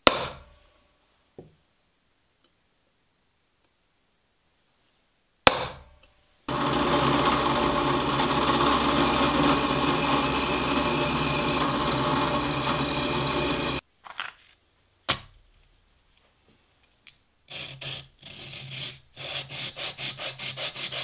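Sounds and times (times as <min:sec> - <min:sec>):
hammer striking a punch: 0:00.0 - 0:00.5
drill press boring steel: 0:06.5 - 0:13.8.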